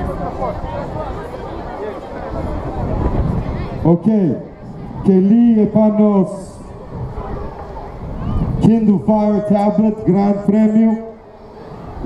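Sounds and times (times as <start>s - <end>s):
crowd background: 0.0s - 12.0s.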